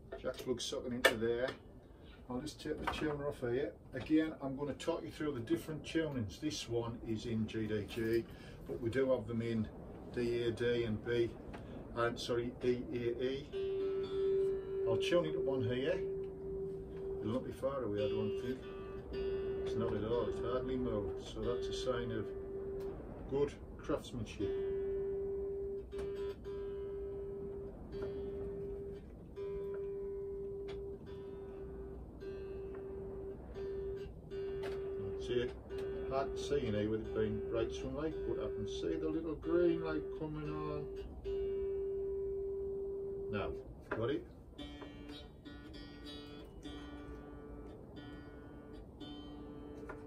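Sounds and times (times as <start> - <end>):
plucked string notes: 0.0 - 50.0.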